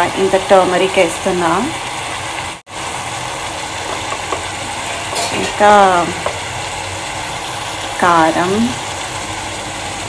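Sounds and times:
curry sizzling in a pan: 0.0 - 10.0.

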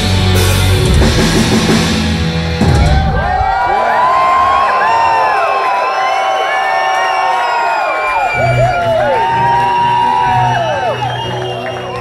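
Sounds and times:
concert crowd cheering and whooping: 2.6 - 12.0.

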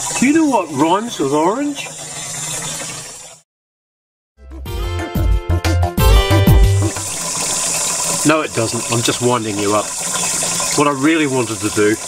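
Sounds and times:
water pouring into plastic can: 6.9 - 12.0.

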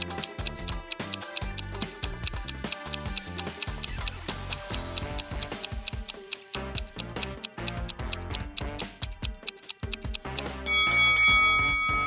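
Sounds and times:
ticking countdown music: 0.0 - 12.0
bright bell chime: 10.7 - 12.0.

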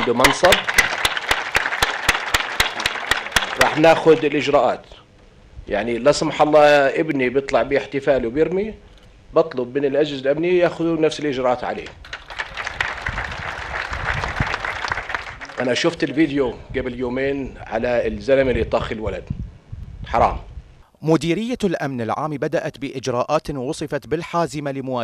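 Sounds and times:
audience applauding: 0.0 - 4.2, 12.0 - 16.0
loud evenly spaced hand claps: 0.0 - 4.2, 12.0 - 15.8.

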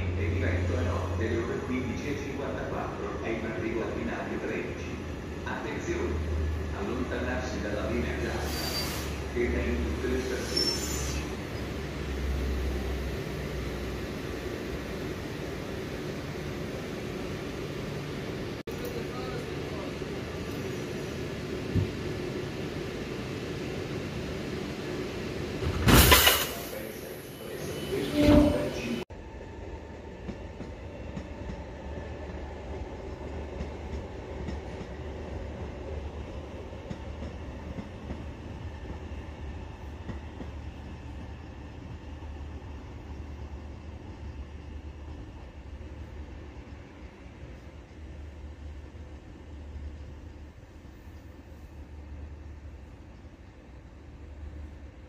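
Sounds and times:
electric train hum: 0.0 - 55.0.

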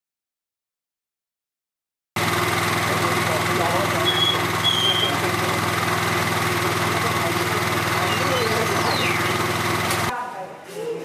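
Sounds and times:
engine idling: 2.2 - 10.1.

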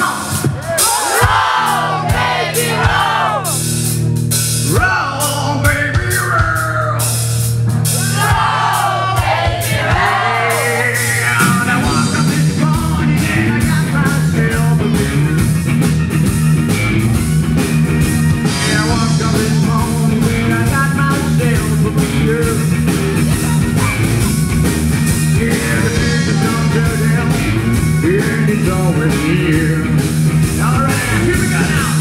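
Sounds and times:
bass guitar: 0.0 - 32.0
drum kit beat: 0.0 - 32.0
electric guitar: 10.5 - 32.0.

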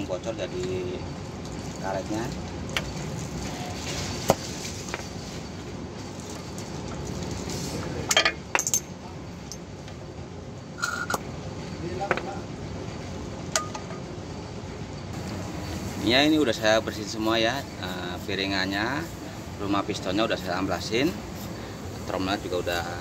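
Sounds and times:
steady background noise: 0.0 - 23.0.

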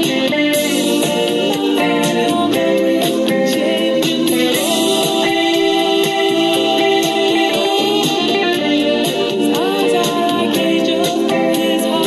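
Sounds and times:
backing track with singing: 0.0 - 12.0
electric guitar playing: 0.0 - 12.0.

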